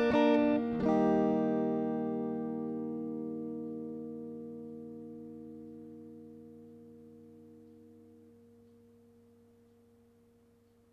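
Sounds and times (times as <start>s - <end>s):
electric guitar chord ringing: 0.0s - 10.7s.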